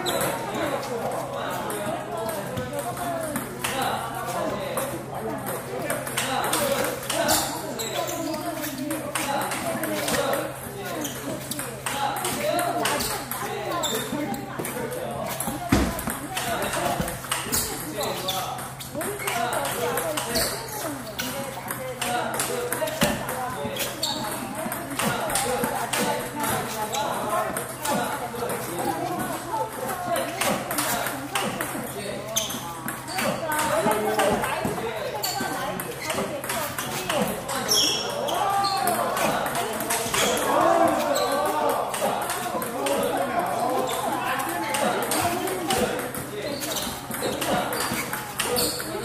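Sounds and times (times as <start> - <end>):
ping pong ball clicking on paddles: 0.1 - 0.7, 1.6 - 14.2, 14.9 - 37.8, 38.8 - 49.0.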